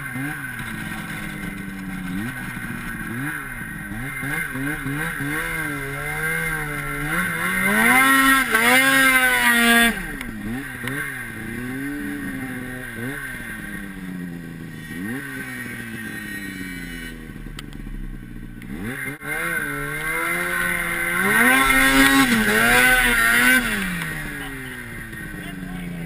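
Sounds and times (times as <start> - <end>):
snowmobile engine revving: 0.0 - 26.0.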